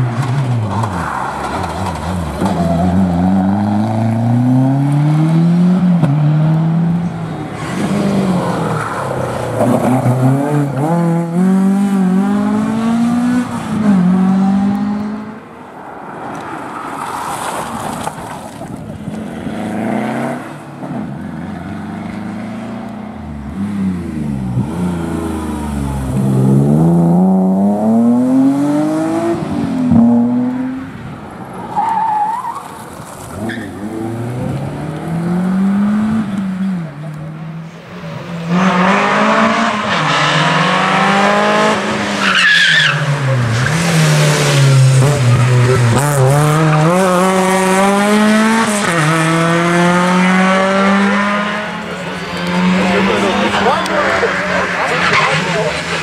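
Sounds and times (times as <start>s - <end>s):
rally car engines revving: 0.0s - 15.5s, 17.7s - 56.0s.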